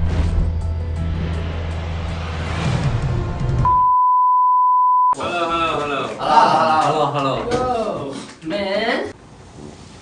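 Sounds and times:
steady pure beep tone: 3.7 - 5.2.

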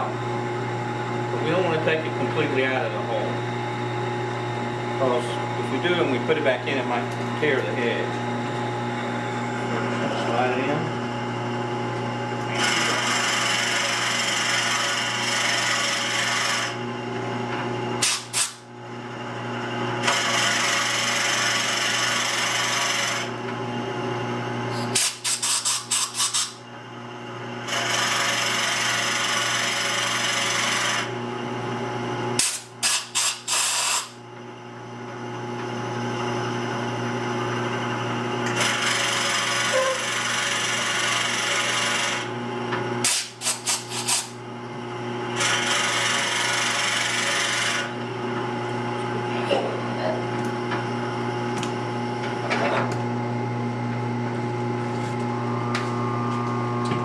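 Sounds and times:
wood lathe humming: 0.0 - 24.0, 25.0 - 31.8, 34.7 - 42.5, 43.3 - 52.6, 53.8 - 57.0
tool rasping on wood: 38.7 - 42.2.

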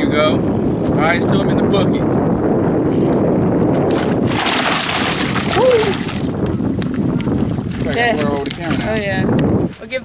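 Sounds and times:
wind buffeting microphone: 0.0 - 10.0
fish thrashing in water bucket: 3.8 - 6.4.

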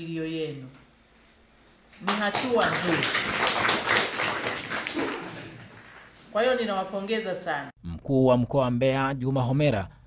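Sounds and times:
group of people clapping: 2.0 - 6.2.

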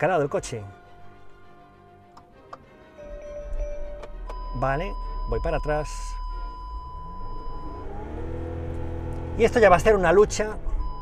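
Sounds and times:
diesel engine rumbling: 3.1 - 11.0
high electronic warning tone: 3.4 - 8.0.

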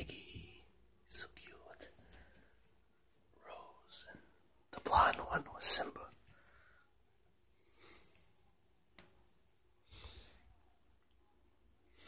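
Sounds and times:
person whispering: 0.0 - 2.5, 3.3 - 6.3.

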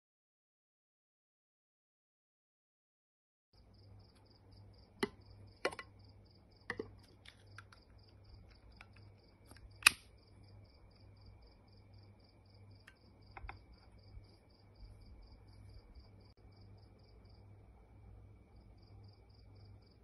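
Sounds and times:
insect chirping: 3.6 - 20.0.

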